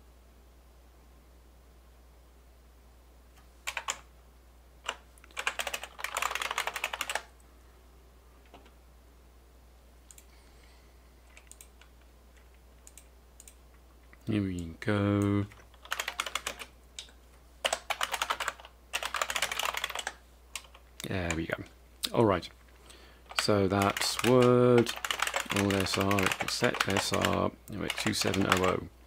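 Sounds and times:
keyboard typing: 0:03.6 - 0:04.1, 0:04.8 - 0:07.3, 0:11.3 - 0:13.6, 0:14.6 - 0:21.5, 0:23.3 - 0:28.8
man's voice: 0:21.0 - 0:22.5, 0:23.4 - 0:24.9, 0:25.5 - 0:28.9.

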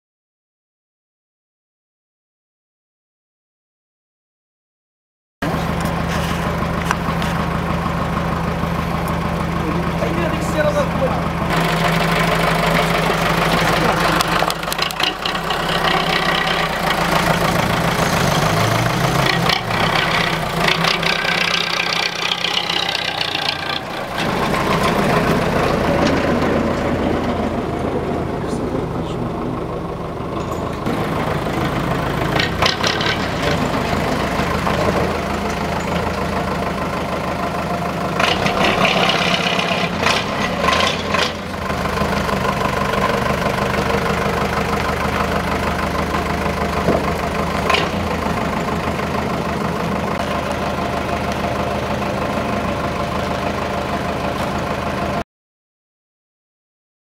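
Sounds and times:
diesel engine idling: 0:05.4 - 0:55.2
people talking: 0:09.6 - 0:11.3, 0:28.3 - 0:29.8.

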